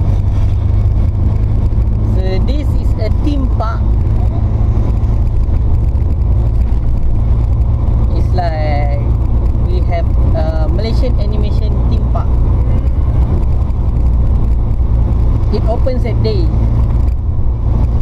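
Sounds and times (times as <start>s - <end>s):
van engine and road noise: 0.0s - 18.0s.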